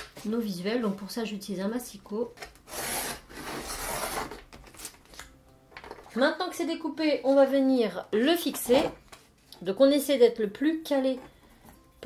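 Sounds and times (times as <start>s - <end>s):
paper trimmer slicing paper: 2.7s - 4.3s.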